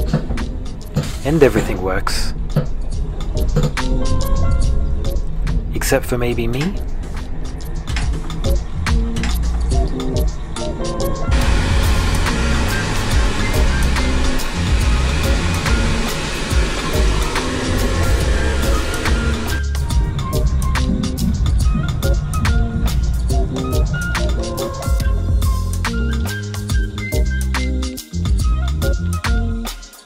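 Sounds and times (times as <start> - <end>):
background music with steady beat: 0.0 - 30.0
hand dryer blowing air: 11.3 - 19.8.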